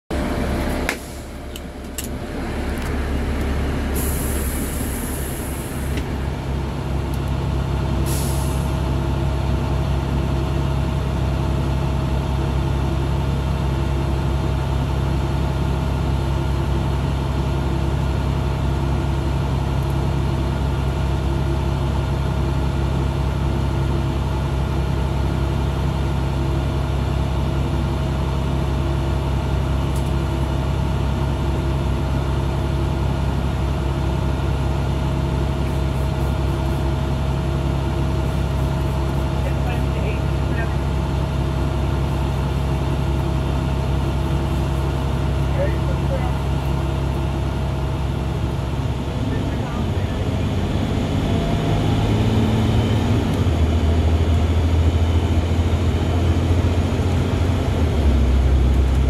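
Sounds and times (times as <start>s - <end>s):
bus engine idling: 0.1s - 59.0s.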